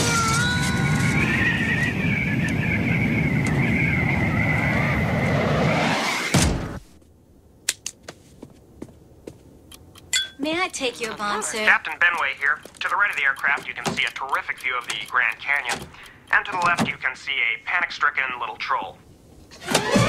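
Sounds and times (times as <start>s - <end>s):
wind rushing with whistling: 0.0s - 6.4s
faint clicks: 9.6s - 17.1s.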